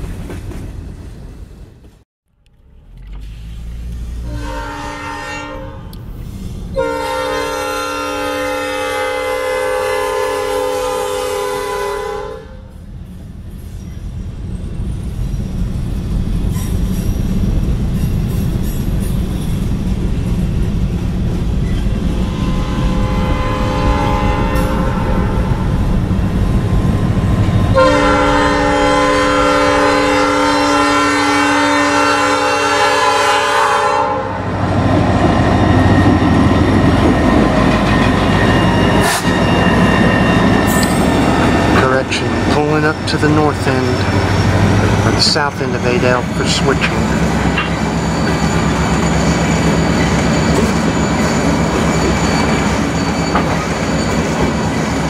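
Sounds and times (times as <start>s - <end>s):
train wheels on rails: 0.0s - 2.0s, 12.6s - 33.6s, 34.4s - 55.0s
locomotive engine rumble: 0.0s - 11.0s, 12.7s - 55.0s
locomotive air horn blasts: 4.2s - 6.1s, 6.7s - 12.7s, 22.1s - 25.9s, 27.7s - 34.5s.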